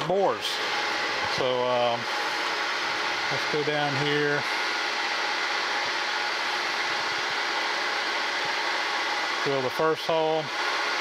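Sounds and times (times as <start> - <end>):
milling machine hum with high whine: 0.0 - 11.0.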